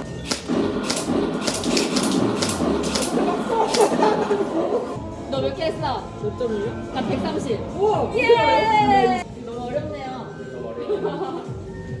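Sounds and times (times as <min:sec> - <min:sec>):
replica rifle shots: 0:00.2 - 0:04.1.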